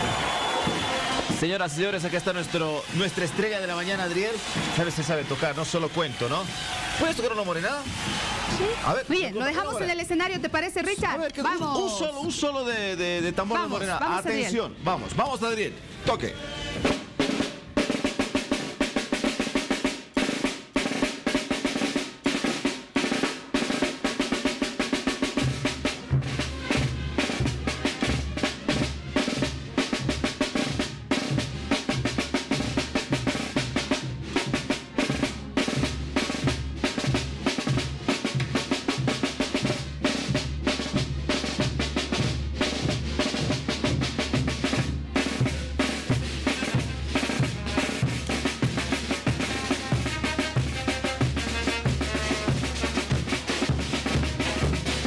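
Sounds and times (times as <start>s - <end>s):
snare drum rolls: 0.0s - 14.0s, 16.8s - 55.0s
bass drum and tubas: 0.0s - 55.0s.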